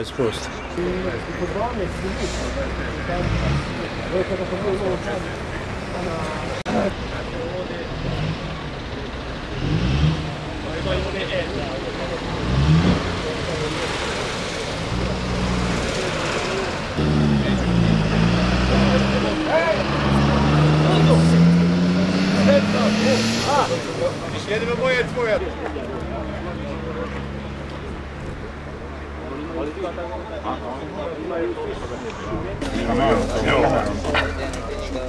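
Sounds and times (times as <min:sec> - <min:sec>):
people talking: 0:00.0 - 0:35.0
vehicle engine revving: 0:00.8 - 0:28.8.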